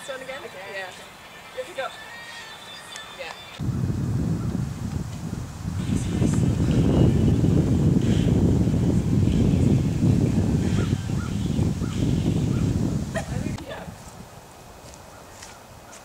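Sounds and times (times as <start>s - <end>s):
wind buffeting microphone: 3.6s - 16.0s.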